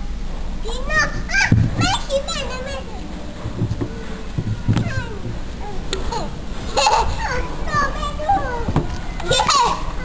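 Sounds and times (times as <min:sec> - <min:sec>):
low thumps: 0:00.6 - 0:10.0
toddlers babbling and squealing: 0:00.7 - 0:10.0.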